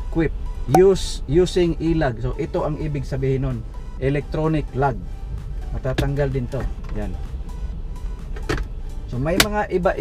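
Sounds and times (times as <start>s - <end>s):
truck cab low rumble: 0.0s - 10.0s.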